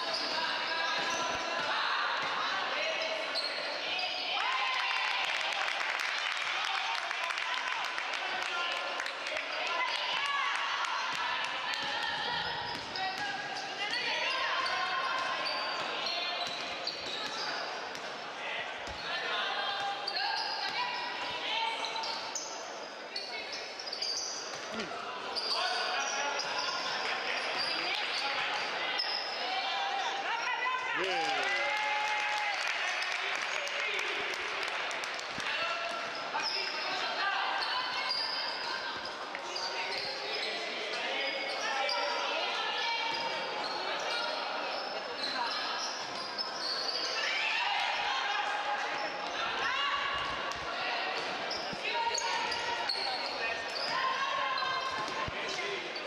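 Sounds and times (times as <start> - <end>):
sneakers squeaking on court: 12.2 - 18.2, 50.2 - 56.0.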